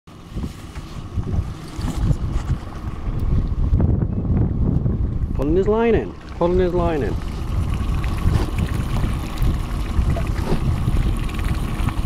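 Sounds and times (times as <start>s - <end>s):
wind buffeting microphone: 0.2s - 12.0s.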